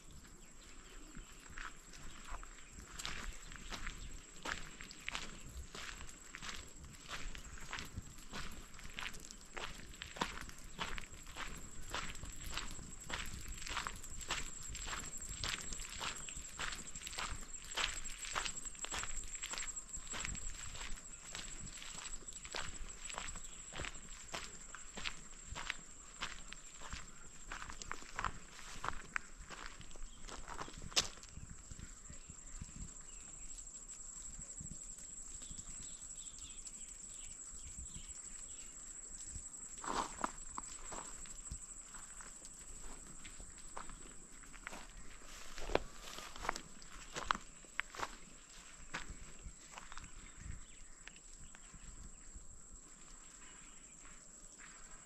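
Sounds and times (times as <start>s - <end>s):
footsteps on dirt path: 0.1s - 33.5s, 35.4s - 52.3s, 52.9s - 55.0s.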